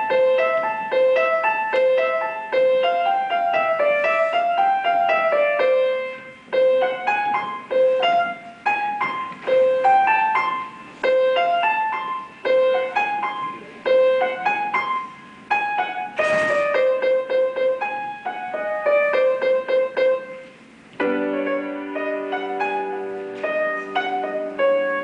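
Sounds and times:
solo piano melody: 0.0s - 25.0s.

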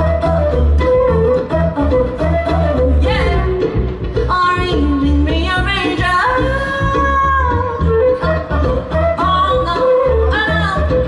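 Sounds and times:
flute melody: 0.0s - 4.8s, 6.3s - 11.0s
live reggae band: 0.0s - 11.0s
pulsing bass line: 0.0s - 11.0s.

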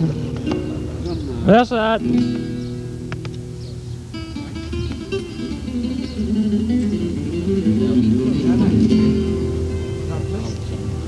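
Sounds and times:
plucked guitar melody: 0.0s - 11.0s.

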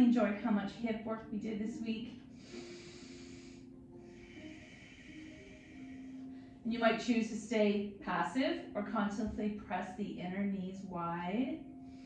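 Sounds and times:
breathing out through nose: 2.4s - 6.6s.

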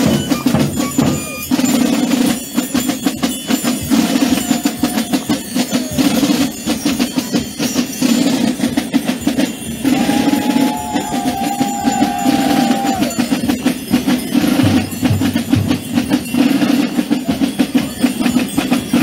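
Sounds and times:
drum band marching rhythm: 0.0s - 19.0s
held higher tone: 9.8s - 13.6s.

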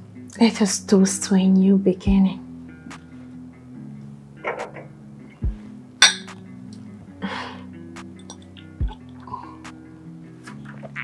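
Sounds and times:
soft background music: 0.0s - 11.0s
wine glasses clinking: 6.0s - 6.4s.

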